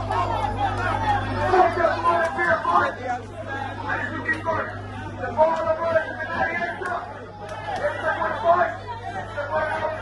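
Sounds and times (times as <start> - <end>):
people chattering: 0.0 - 10.0
steady low hum: 0.0 - 10.0.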